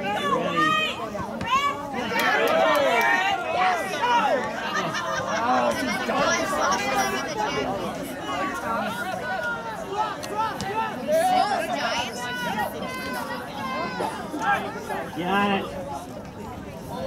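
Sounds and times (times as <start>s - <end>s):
voices talking and calling out: 0.0s - 17.0s.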